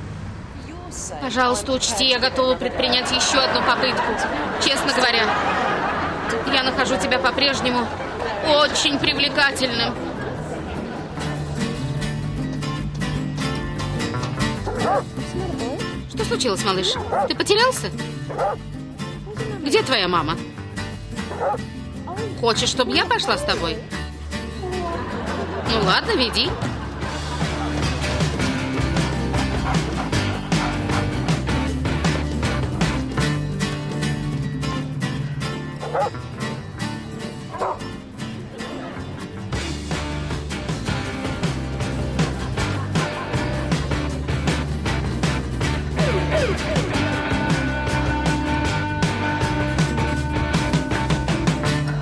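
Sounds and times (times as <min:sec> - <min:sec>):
background music: 0:01.0 - 0:52.0
dog whining and yipping: 0:14.7 - 0:15.0, 0:17.0 - 0:17.3, 0:18.3 - 0:18.6, 0:21.3 - 0:22.4, 0:35.8 - 0:36.1, 0:46.0 - 0:47.0.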